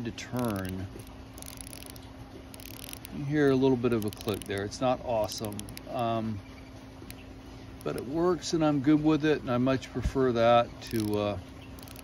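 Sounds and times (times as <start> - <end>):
watch bezel ratcheting clicks: 0.2 - 6.0, 7.8 - 8.1, 10.8 - 12.0.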